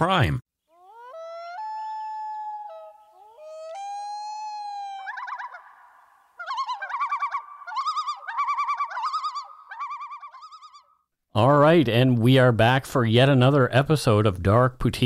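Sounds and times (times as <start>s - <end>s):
loon tremolo call: 0.7s - 10.8s
loon wailing call: 0.7s - 10.9s.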